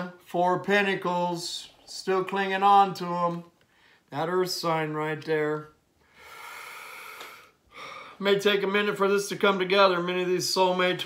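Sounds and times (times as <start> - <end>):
soft intake of breath: 3.7 - 4.1, 6.0 - 8.2
man exhaling breathily: 6.0 - 8.2.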